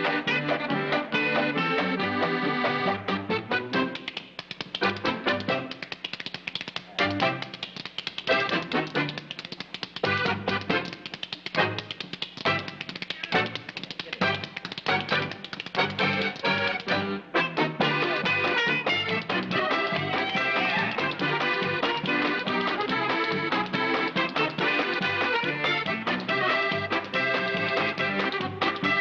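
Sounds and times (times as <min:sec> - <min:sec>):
accordion: 0:00.0 - 0:06.0, 0:06.9 - 0:29.0
polka dance band: 0:00.0 - 0:29.0
spoons clicking in rhythm: 0:03.7 - 0:17.0, 0:18.5 - 0:29.0.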